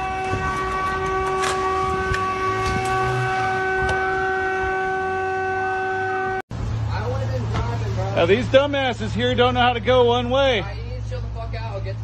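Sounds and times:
vehicle horn long blast: 0:00.0 - 0:06.4.

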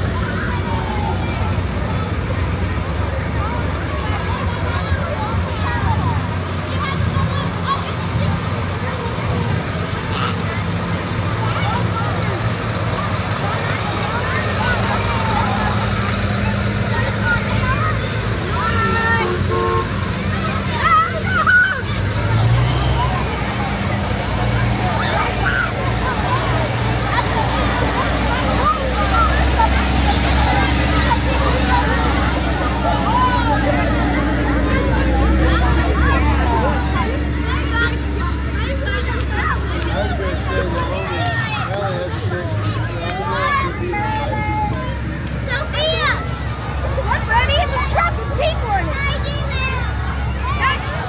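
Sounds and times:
children chattering: 0:00.0 - 0:51.0
tractor diesel engines rumbling: 0:00.0 - 0:51.0.

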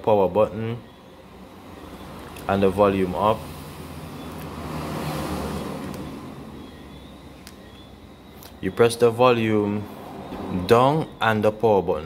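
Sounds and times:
rushing background noise: 0:00.2 - 0:12.0.

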